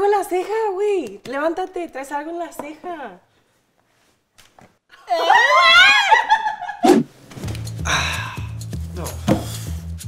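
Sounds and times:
woman screaming: 5.1s - 6.4s.

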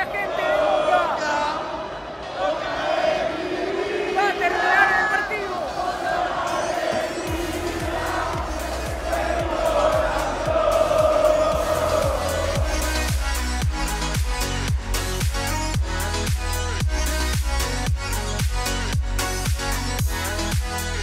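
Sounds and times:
stadium crowd chanting: 0.0s - 13.5s
electronic dance music: 4.2s - 21.0s.

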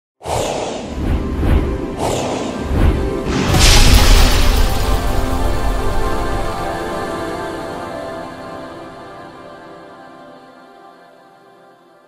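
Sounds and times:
whoosh with deep rumble: 0.2s - 6.4s
music: 0.8s - 12.0s.

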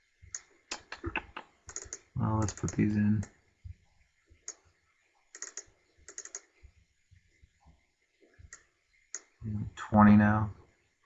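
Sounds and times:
faint computer mouse clicks: 5.4s - 6.5s.

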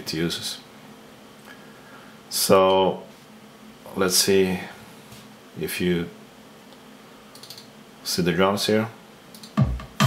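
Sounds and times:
faint steady hum: 0.0s - 10.0s
light computer clicks: 7.3s - 7.7s, 9.3s - 9.6s.

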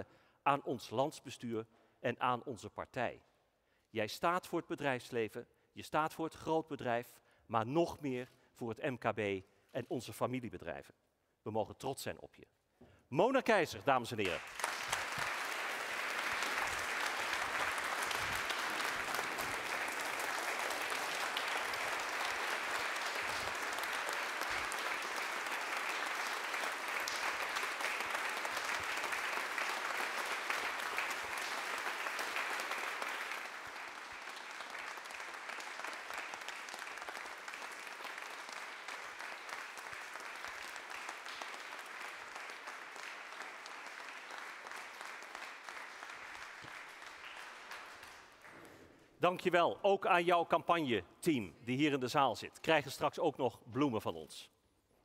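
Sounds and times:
audience applauding: 14.2s - 48.6s.

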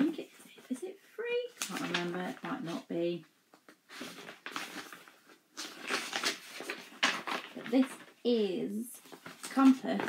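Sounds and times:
paper rustling and crackling: 1.5s - 3.0s, 3.6s - 10.0s.

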